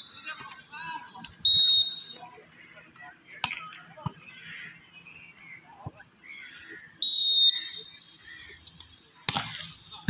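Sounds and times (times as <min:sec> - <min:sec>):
referee's whistle: 0:00.0 - 0:00.5, 0:01.2 - 0:02.3, 0:07.0 - 0:08.3.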